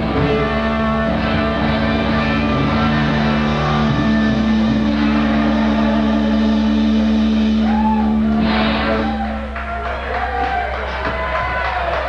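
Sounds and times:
punk rock band playing: 0.0 - 11.6
electric guitar: 0.0 - 12.0.

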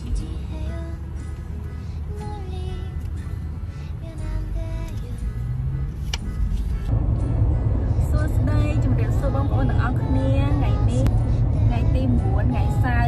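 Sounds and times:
road rumble inside car: 0.0 - 13.0.

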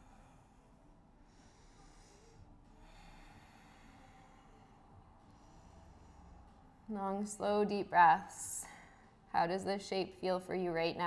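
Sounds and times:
person breathing faintly: 0.0 - 6.7.

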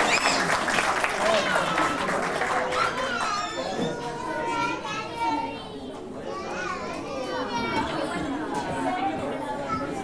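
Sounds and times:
young children chattering and calling: 1.5 - 10.0.

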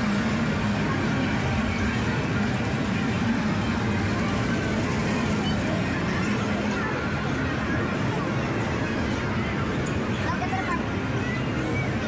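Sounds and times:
arcade game machines running: 0.0 - 12.0
people talking: 0.0 - 12.0.

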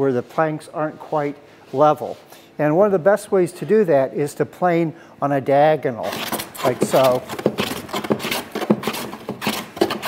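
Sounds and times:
block plane shaving wood: 6.0 - 10.0.

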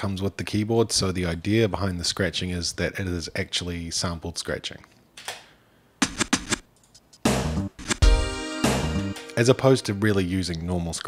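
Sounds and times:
turntable scratching: 6.0 - 8.2.

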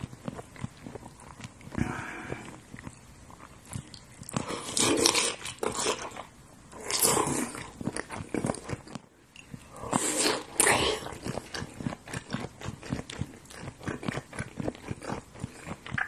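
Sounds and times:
wet chewing and lip-smacking: 0.0 - 16.0.

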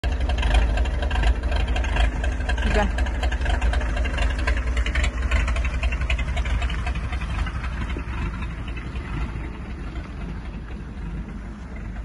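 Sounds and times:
engine rumbling through mud: 0.0 - 12.0.

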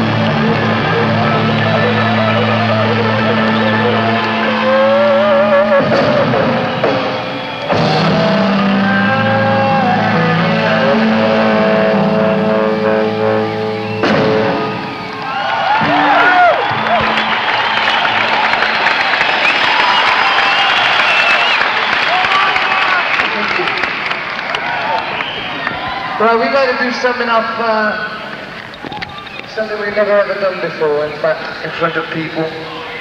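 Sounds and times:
crowd cheering and whistling: 0.0 - 33.0
rock band chord ringing: 15.8 - 17.9.

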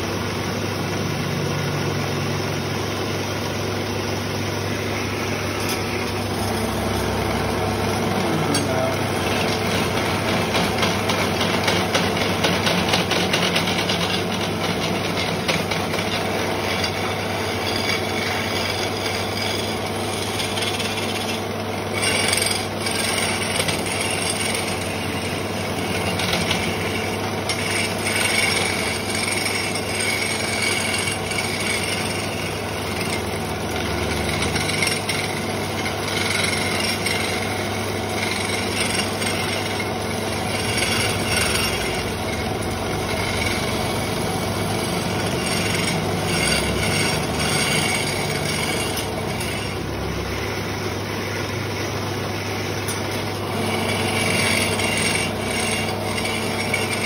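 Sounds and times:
lathe motor hum: 0.0 - 57.0
chisel scraping turning wood: 3.0 - 57.0.

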